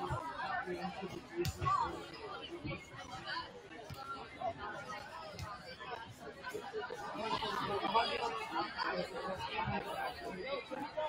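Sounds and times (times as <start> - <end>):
chatter of many voices: 0.0 - 11.0.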